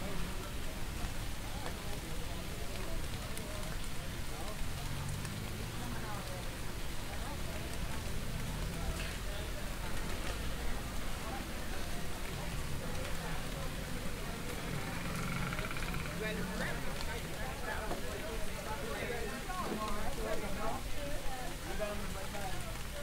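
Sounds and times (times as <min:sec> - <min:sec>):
indistinct voices of passers-by: 0:00.0 - 0:23.0
low traffic rumble: 0:00.0 - 0:23.0.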